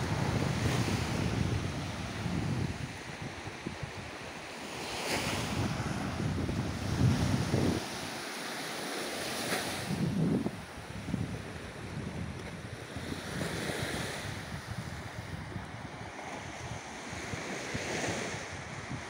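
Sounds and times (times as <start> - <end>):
wind buffeting microphone: 0.0 - 8.2, 9.4 - 19.0
small waves on sandy shore: 0.0 - 19.0.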